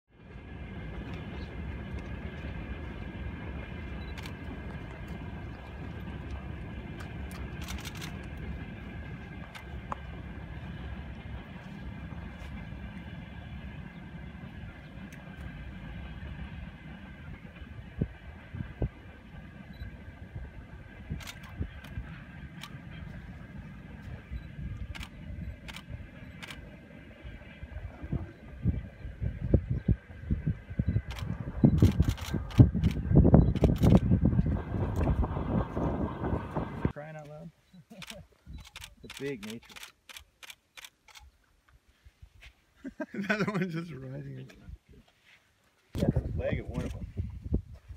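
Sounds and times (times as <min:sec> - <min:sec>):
low outdoor rumble: 0:00.1 - 0:47.9
scattered clicks: 0:07.0 - 0:08.4, 0:31.0 - 0:34.1, 0:37.9 - 0:41.3.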